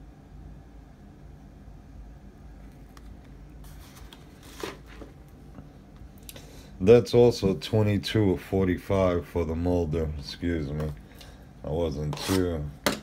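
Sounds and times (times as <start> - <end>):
faint room hum: 0.0 - 13.0.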